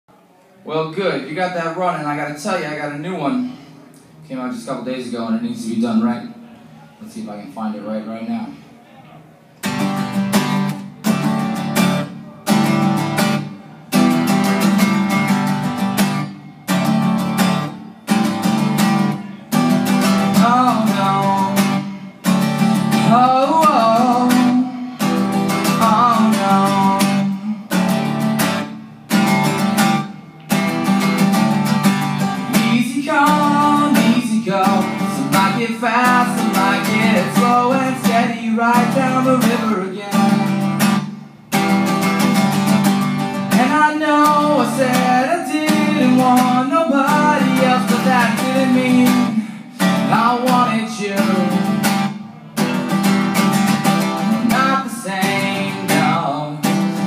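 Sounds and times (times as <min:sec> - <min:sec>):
acoustic guitar strumming: 0:09.6 - 0:57.0
man singing: 0:19.8 - 0:28.2, 0:32.3 - 0:41.1, 0:43.4 - 0:52.2, 0:53.6 - 0:57.0.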